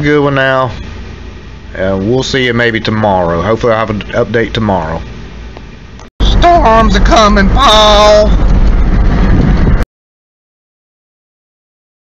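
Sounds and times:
low rumble inside car: 0.0s - 9.8s.

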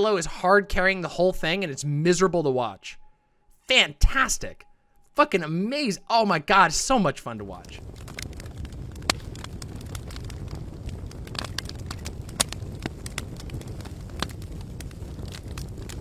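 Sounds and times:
fire rumbling: 6.5s - 16.0s
fire crackles and pops: 6.7s - 16.0s.

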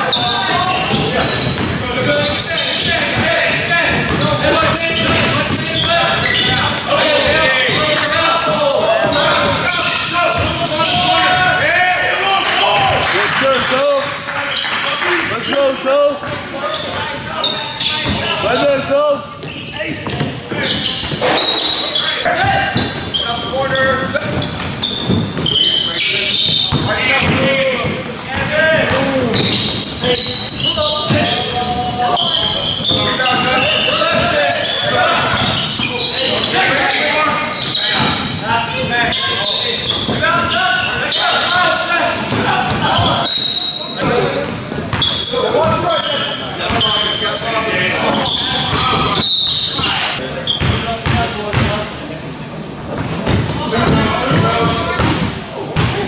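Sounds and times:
sneakers squeaking: 0.0s - 13.7s, 14.4s - 52.0s, 52.6s - 56.0s
basketball dribbling: 0.2s - 11.2s, 26.3s - 35.9s.

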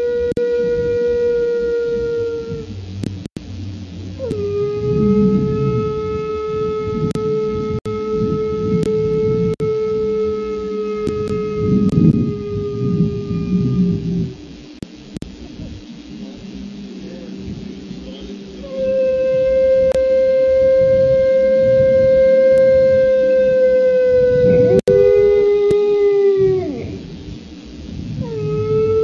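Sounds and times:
dog howling: 0.0s - 2.7s, 4.2s - 14.4s, 18.2s - 27.1s, 28.2s - 29.0s.

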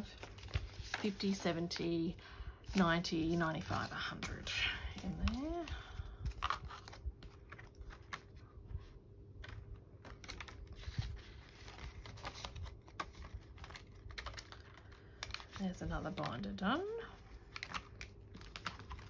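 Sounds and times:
faint steady hum: 0.0s - 19.0s
plastic sleeves crinkling: 0.0s - 19.0s.

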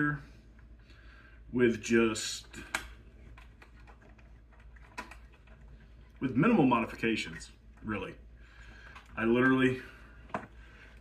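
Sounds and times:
light clicks and handling noises: 2.2s - 11.0s.

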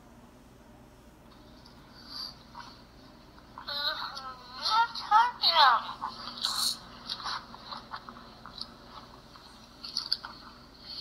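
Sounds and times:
small clicks and scrapes: 6.1s - 11.0s.

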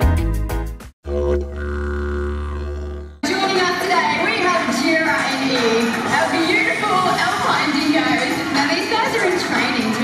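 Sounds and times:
didgeridoo drone: 1.0s - 3.3s.

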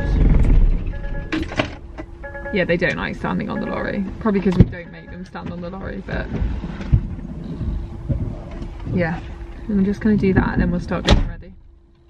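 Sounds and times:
dull thumps: 0.0s - 11.7s
low rumble: 0.0s - 12.0s
steady hum: 0.0s - 12.0s.

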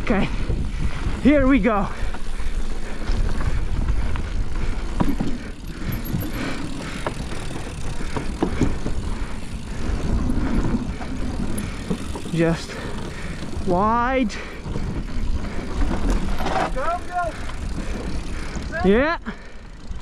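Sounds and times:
wind buffeting microphone: 0.0s - 18.8s
bike rattling: 0.0s - 20.0s
bike tyres rumbling over dirt: 0.0s - 20.0s.

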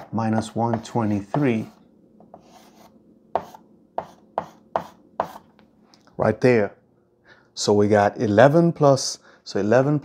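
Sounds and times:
chalk tapping and scraping on blackboard: 0.0s - 5.7s.

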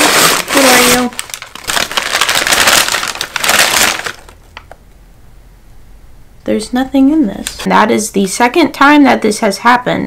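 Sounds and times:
packing paper crackling and rustling: 0.0s - 4.7s.

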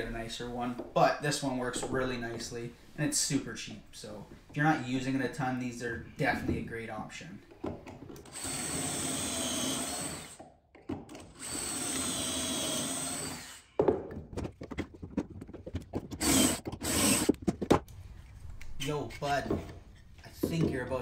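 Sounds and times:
cordless drill boring into wood: 8.3s - 10.4s, 11.3s - 13.7s, 16.2s - 17.3s
clamp and wood knocks and clicks: 10.4s - 11.3s, 13.8s - 17.9s.

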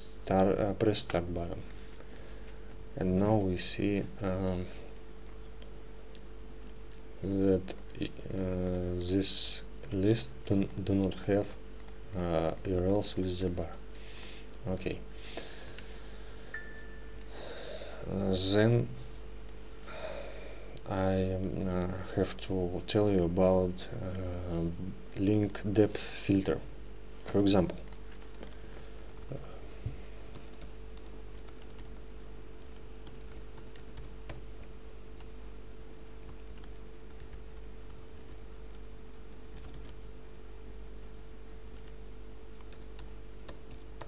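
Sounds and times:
low electrical hum: 0.0s - 44.0s
computer keyboard typing: 4.2s - 5.7s, 6.9s - 9.0s, 9.8s - 14.6s, 27.6s - 29.4s, 30.3s - 32.0s, 32.6s - 40.1s, 41.0s - 44.0s
faint high chime tone: 16.5s - 17.4s.

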